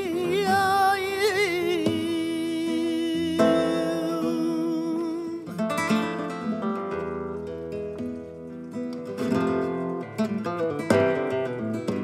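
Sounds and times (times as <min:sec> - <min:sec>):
flamenco guitar playing: 0:00.0 - 0:12.0.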